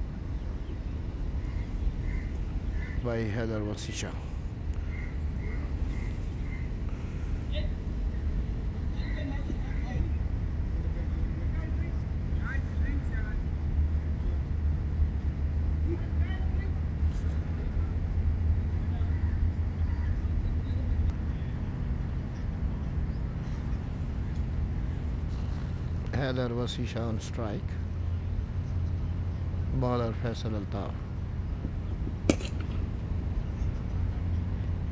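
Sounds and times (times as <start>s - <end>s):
outdoor background rumble: 0.0s - 34.9s.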